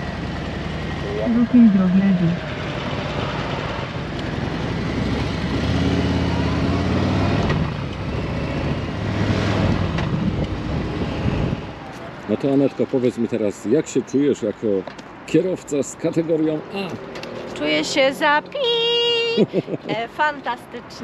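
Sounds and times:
motorcycle engines running: 0.0 - 13.8, 16.0 - 20.3
wind noise on microphone: 7.3 - 11.8.

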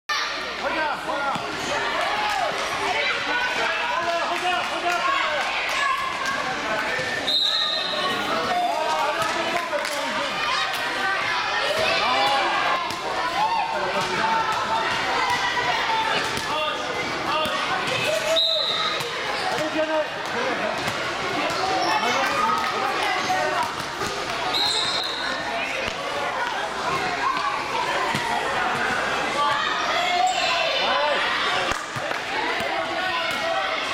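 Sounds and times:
people calling out in gym: 0.1 - 20.7, 21.4 - 33.9
whistle blast: 7.3 - 8.0, 18.3 - 19.0, 24.5 - 25.3
children shouting: 10.3 - 19.5
basketball bouncing on court: 19.0 - 21.8.

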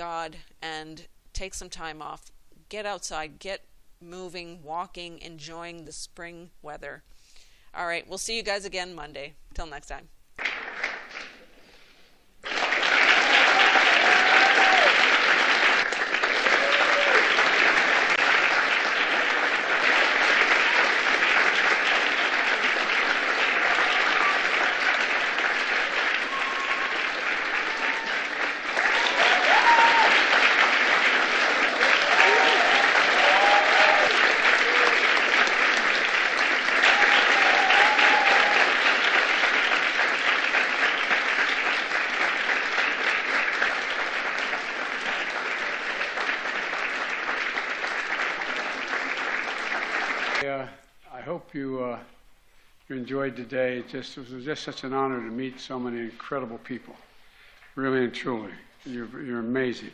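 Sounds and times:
audience applauding: 10.4 - 50.5.

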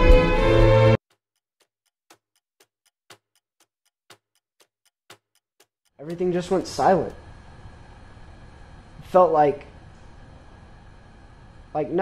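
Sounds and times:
clock ticking: 1.0 - 7.9.

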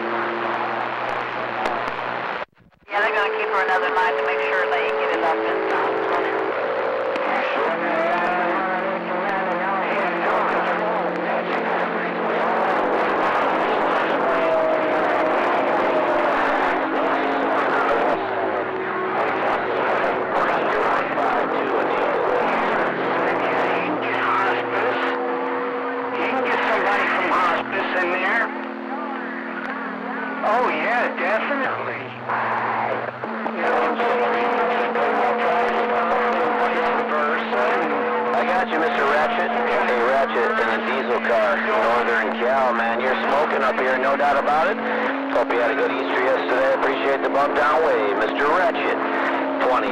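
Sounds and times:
garbled radio voices: 0.0 - 49.9
radio hiss: 0.0 - 49.9.

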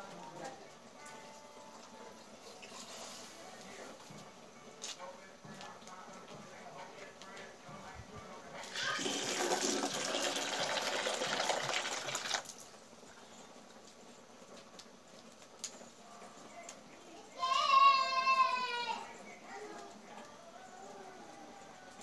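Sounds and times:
water pouring or splashing: 8.7 - 12.6.

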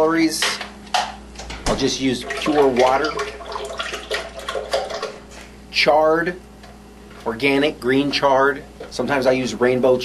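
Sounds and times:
liquid pouring into blender jar: 2.2 - 5.2.

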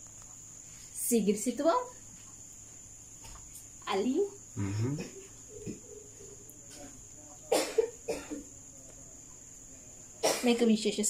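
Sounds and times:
faint high-pitched whine: 0.0 - 11.0
person coughing: 4.6 - 5.8, 7.5 - 8.4, 10.2 - 10.5.

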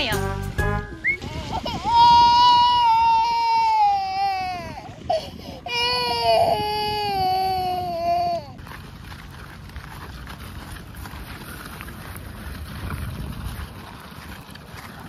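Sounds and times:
toddler crying: 1.2 - 8.6.

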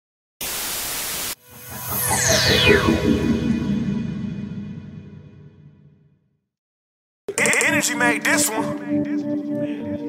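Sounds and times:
music: 7.3 - 10.0.

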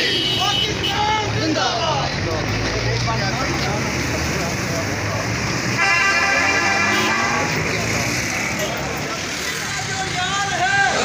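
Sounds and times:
din of many people: 0.0 - 11.0
street traffic: 0.0 - 11.0.

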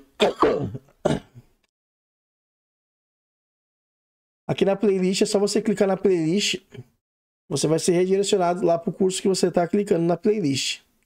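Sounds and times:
man coughing: 0.2 - 1.5.

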